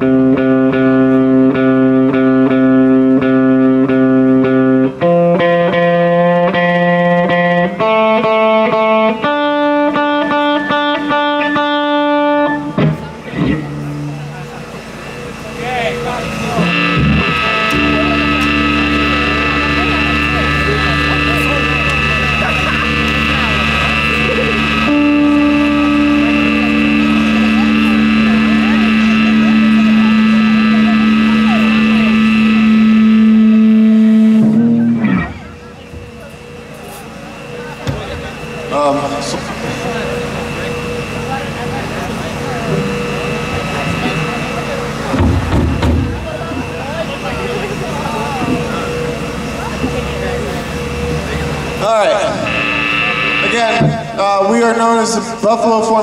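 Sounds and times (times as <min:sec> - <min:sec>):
droning electric guitar chord: 0:00.0 - 0:56.0
low hum: 0:12.2 - 0:55.9.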